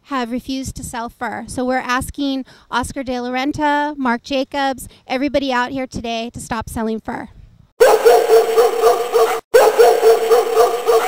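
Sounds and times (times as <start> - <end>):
dog yapping: 7.8 - 11.0.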